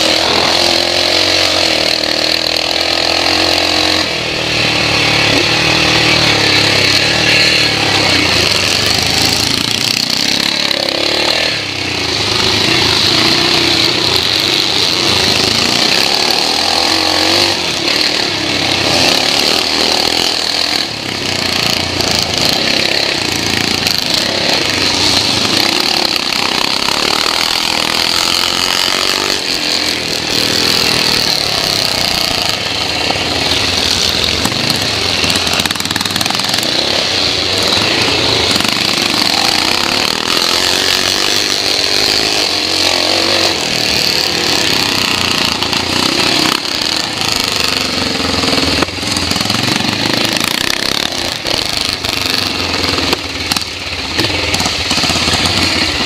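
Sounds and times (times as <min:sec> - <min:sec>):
motorcycle engine at full throttle: 0:00.0 - 0:56.0.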